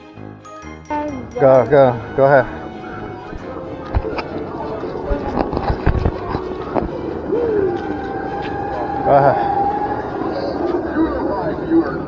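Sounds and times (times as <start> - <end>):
music: 0.0 - 10.3
indistinct voices: 0.9 - 12.0.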